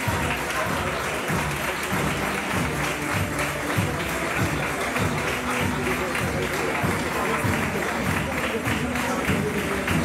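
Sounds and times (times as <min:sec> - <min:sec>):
brass band march: 0:00.0 - 0:10.0
crowd applauding: 0:00.0 - 0:10.0.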